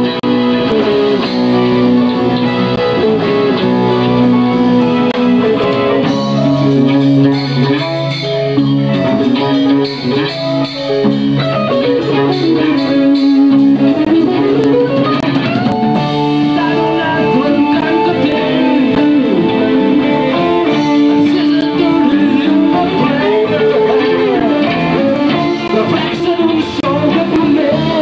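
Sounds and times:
bass guitar: 0:00.0 - 0:28.0
drum kit: 0:00.0 - 0:28.0
electric guitar: 0:00.0 - 0:28.0.

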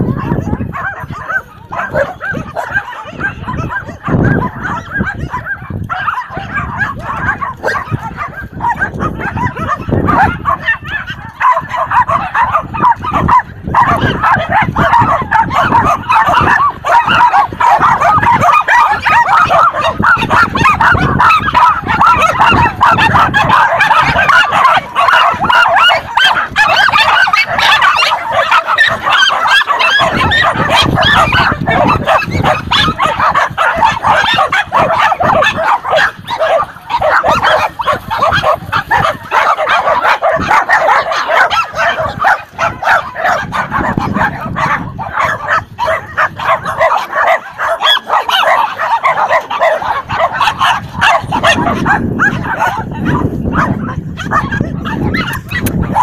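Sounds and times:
small dogs barking and yapping: 0:00.0 - 0:56.0.

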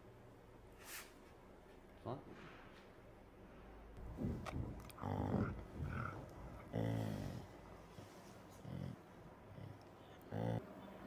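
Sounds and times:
dog low vocalizations: 0:04.3 - 0:10.7.

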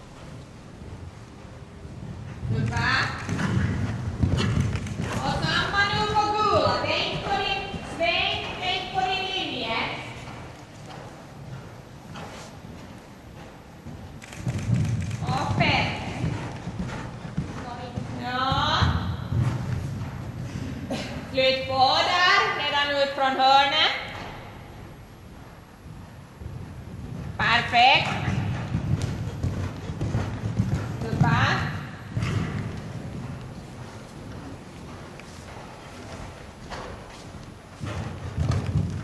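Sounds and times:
horse hoofbeats on sand: 0:00.0 - 0:23.0, 0:23.9 - 0:39.0.

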